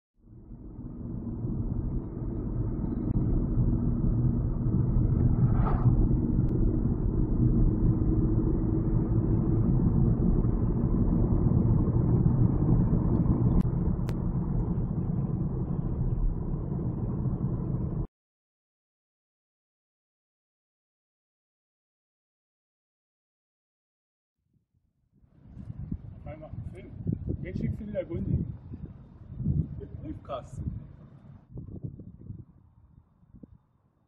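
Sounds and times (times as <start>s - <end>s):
car road and engine rumble: 0.2s - 18.1s, 25.3s - 32.4s.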